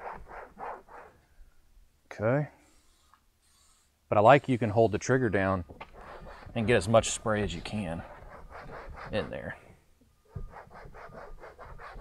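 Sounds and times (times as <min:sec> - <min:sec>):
towel rubbing plastic panel: 0:05.8 - 0:09.4.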